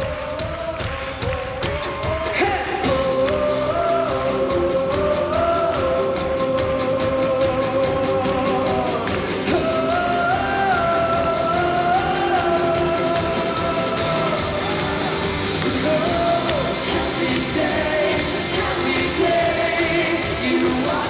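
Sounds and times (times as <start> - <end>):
singing over a full band: 0.0 - 21.0.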